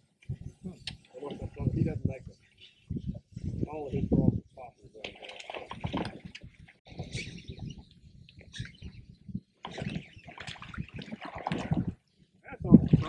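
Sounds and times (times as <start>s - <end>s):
water lapping against boat hull: 4.9s - 13.0s.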